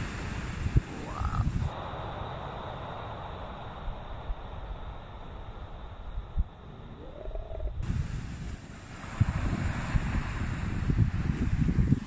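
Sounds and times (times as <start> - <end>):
wind buffeting microphone: 0.0 - 2.2, 3.6 - 12.0
steady hiss: 0.0 - 12.0.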